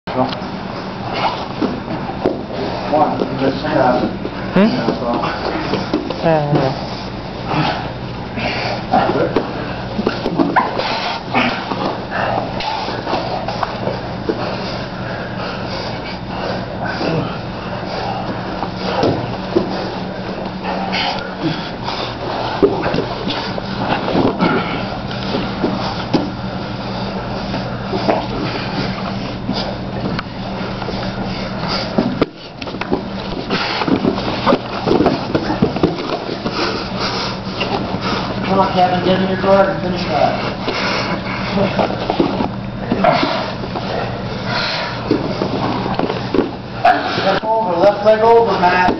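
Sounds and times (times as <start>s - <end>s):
steady low hum: 0.1s - 48.9s
heavy breathing and grunts: 0.2s - 48.9s
bodies thudding on mats: 18.4s - 20.6s, 28.0s - 38.0s.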